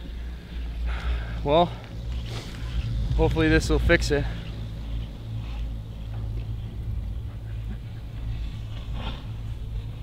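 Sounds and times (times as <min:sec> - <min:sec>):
chairlift low rumble: 0:00.0 - 0:10.0.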